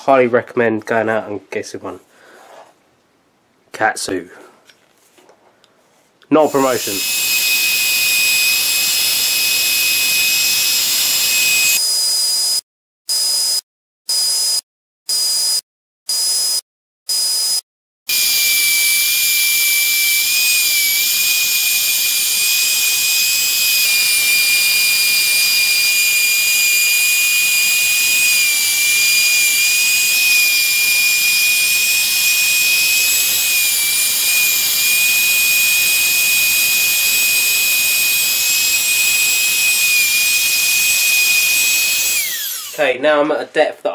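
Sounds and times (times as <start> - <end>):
router whining while routing wood: 6.4 - 11.8, 18.1 - 42.8.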